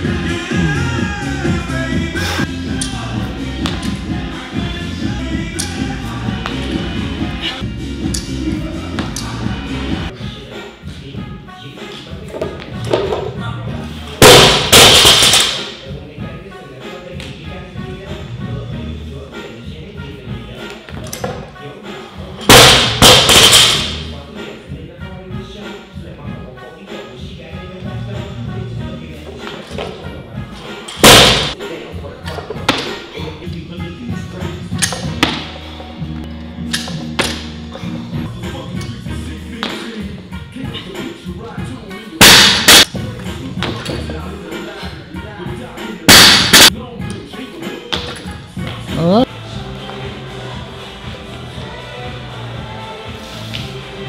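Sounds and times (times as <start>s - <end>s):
background music with a beat: 0.0s - 54.0s
barbell dropped bang: 14.2s - 15.6s.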